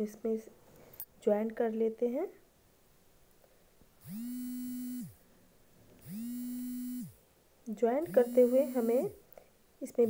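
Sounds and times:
small motor buzzing: 4.0 - 5.2, 6.0 - 7.2, 8.0 - 9.2.

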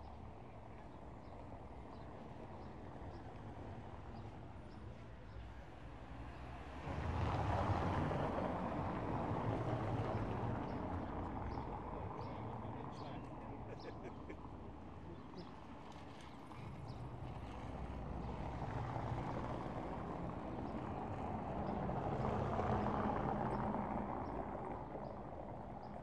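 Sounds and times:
street background: 0.0 - 26.0
car driving on cobblestones: 14.7 - 26.0.

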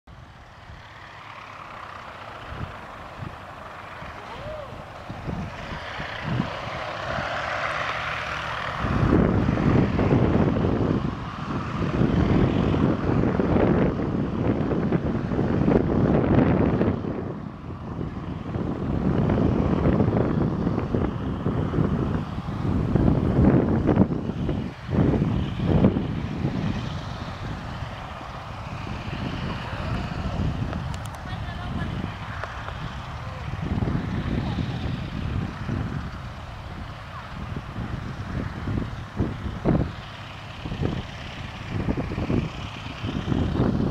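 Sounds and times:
heavy low rumble: 0.1 - 43.9
radial aircraft engine running: 0.1 - 43.9.

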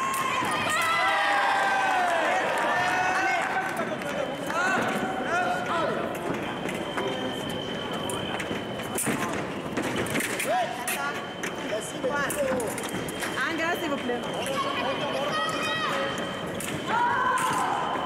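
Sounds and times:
fencers shouting: 0.0 - 3.7, 14.4 - 18.0.

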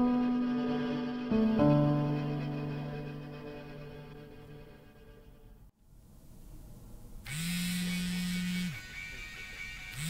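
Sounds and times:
phone vibrating on wooden table: 7.3 - 10.0.

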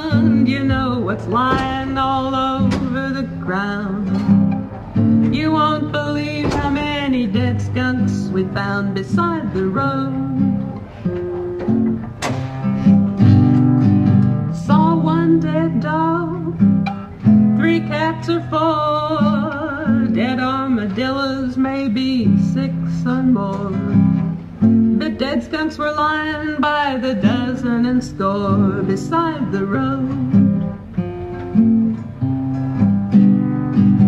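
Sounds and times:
woman singing folk song: 0.0 - 12.0, 12.7 - 34.0
strummed acoustic guitar: 0.0 - 34.0.

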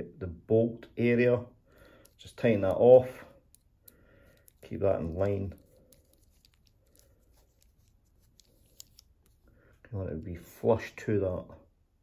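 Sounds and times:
small metal clicks: 3.4 - 9.4.

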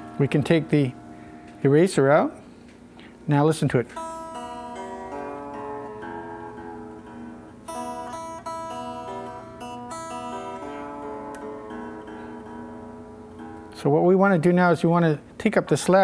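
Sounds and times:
electric guitar notes ringing: 0.0 - 2.6, 3.9 - 14.5.

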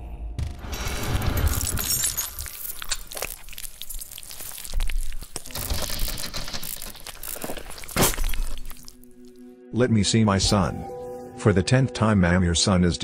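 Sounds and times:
crackles and clicks: 0.6 - 9.4.

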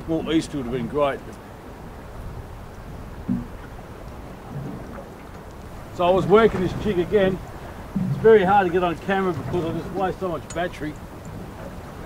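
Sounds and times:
water noise: 0.0 - 12.0
wind: 0.0 - 12.0.

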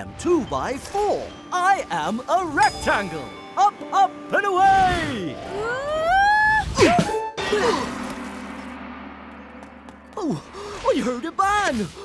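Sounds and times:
large gong ringing: 7.7 - 10.6.

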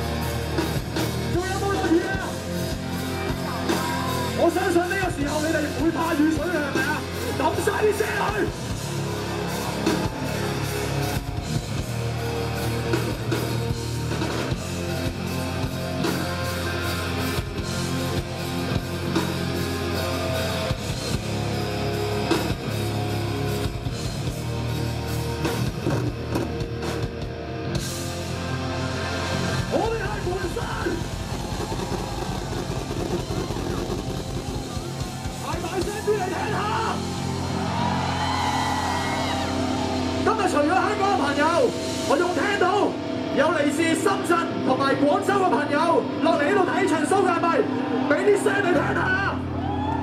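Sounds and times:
hard rock band playing: 0.0 - 50.0
drum hits: 30.4 - 36.2.

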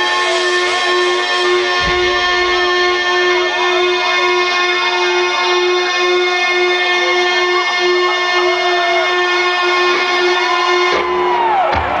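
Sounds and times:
distorted electric guitar: 0.0 - 11.6
low thump: 1.7 - 3.2.

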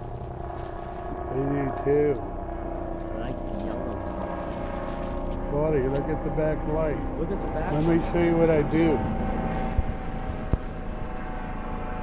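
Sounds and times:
faint steady hum: 0.0 - 12.0
rumbling traffic and wind: 0.0 - 12.0.

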